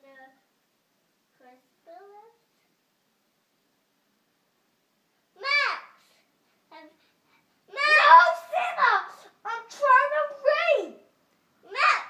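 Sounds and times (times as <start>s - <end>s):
young child's high rising voice: 5.4s - 6.0s, 7.7s - 12.0s.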